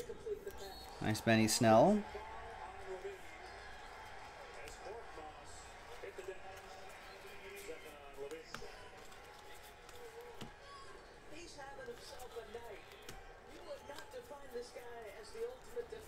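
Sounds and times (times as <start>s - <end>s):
cards being shuffled: 6.2s - 10.6s, 11.9s - 16.0s.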